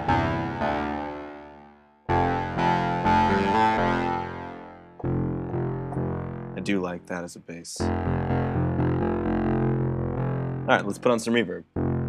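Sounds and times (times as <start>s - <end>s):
synth bass line: 0.0s - 6.8s, 7.8s - 12.0s.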